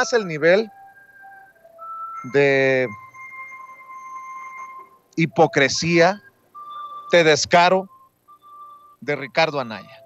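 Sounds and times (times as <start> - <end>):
high sustained music note: 0.0 - 10.0.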